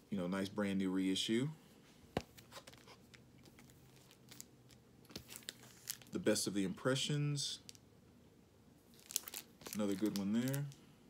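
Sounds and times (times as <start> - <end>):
plastic sleeve crinkling: 2.5 - 6.2, 8.9 - 10.8.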